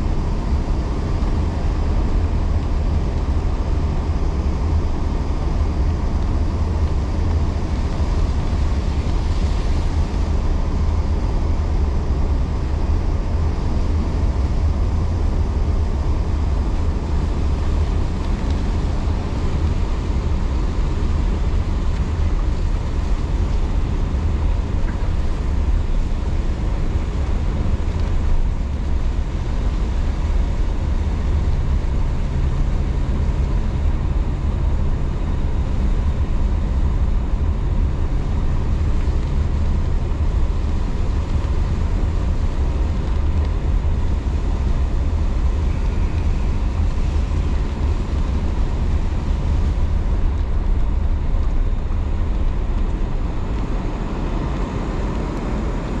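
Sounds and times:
car engine and tyres rumbling: 0:00.0 - 0:56.0
low steady hum: 0:00.0 - 0:56.0.

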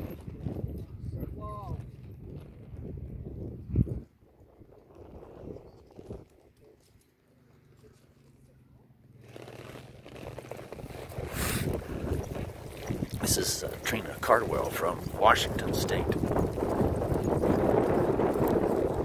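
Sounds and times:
wind blowing across microphone: 0:00.0 - 0:07.0, 0:10.7 - 0:19.0.

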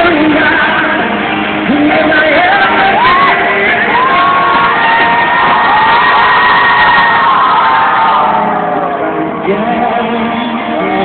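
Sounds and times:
live rock band: 0:00.0 - 0:11.0
crowd cheering and whooping: 0:02.0 - 0:09.5.

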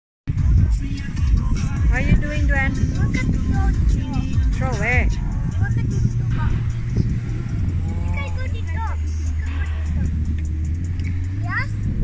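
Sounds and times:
vehicle engine humming: 0:00.3 - 0:12.0.

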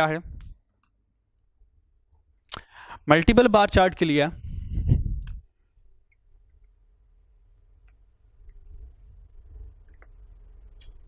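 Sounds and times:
man's voice: 0:00.0 - 0:00.3, 0:03.0 - 0:04.4.

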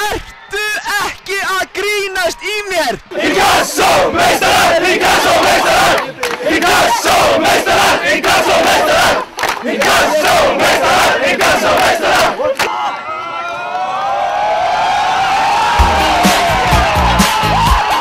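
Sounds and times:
football crowd chanting and shouting: 0:01.6 - 0:18.0
sharp claps or drum hits: 0:09.4 - 0:10.0
heavy dance music beat: 0:15.8 - 0:18.0.

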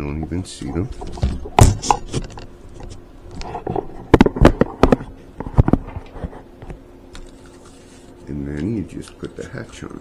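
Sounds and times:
microphone handling clicks and knocks: 0:00.9 - 0:06.8.

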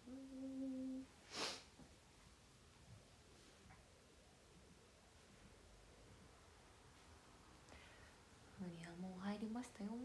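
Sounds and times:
woman humming one note: 0:00.0 - 0:01.1.

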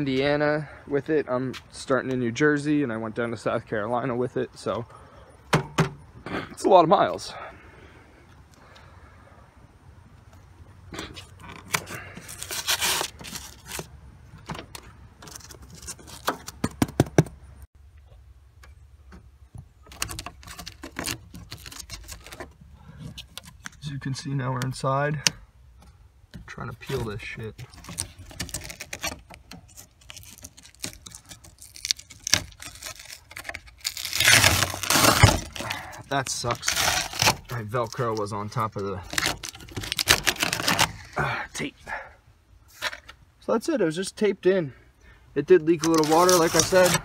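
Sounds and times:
tape peeling off: 0:11.1 - 0:13.9, 0:14.7 - 0:16.6, 0:19.8 - 0:23.8, 0:26.9 - 0:41.2, 0:45.7 - 0:47.0.

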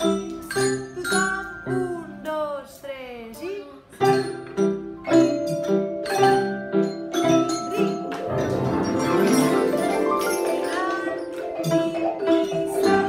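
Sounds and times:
xylophones and metallophones playing: 0:00.0 - 0:02.2, 0:04.0 - 0:13.0
gliding vocal sounds: 0:07.4 - 0:13.0.

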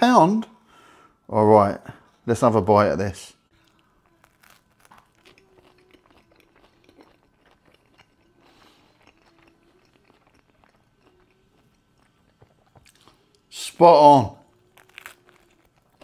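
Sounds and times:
person chewing crunchy pizza: 0:03.6 - 0:13.5, 0:14.4 - 0:16.0.

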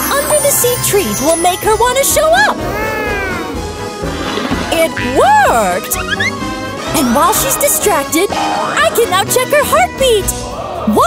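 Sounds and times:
background music: 0:00.0 - 0:11.0
cat-like meow: 0:02.7 - 0:03.6.

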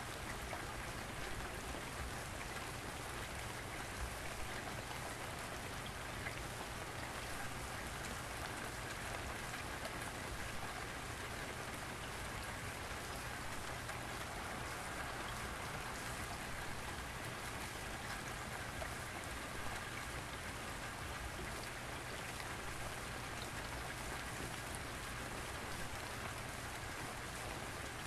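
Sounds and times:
steady rain falling: 0:00.0 - 0:28.0.

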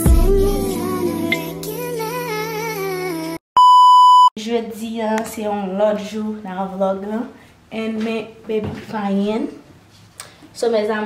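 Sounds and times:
music with singing melody: 0:00.0 - 0:03.4
electronic test-tone beep: 0:03.6 - 0:04.3.

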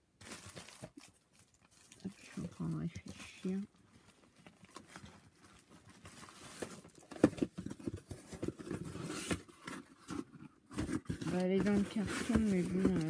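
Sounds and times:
cardboard boxes being handled: 0:04.3 - 0:13.0.

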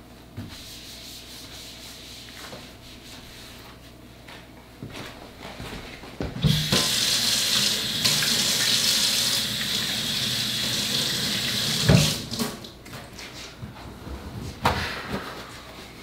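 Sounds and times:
faucet running into sink: 0:06.5 - 0:12.5.

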